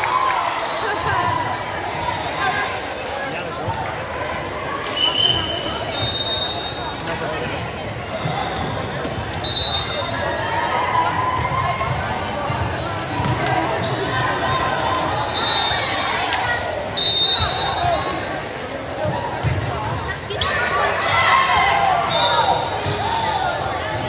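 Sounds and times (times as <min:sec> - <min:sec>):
people calling and talking: 0:00.0 - 0:24.0.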